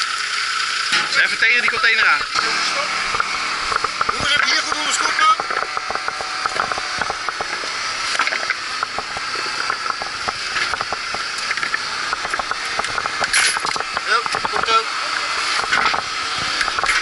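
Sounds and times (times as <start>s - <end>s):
steady machine drone: 0.0s - 17.0s.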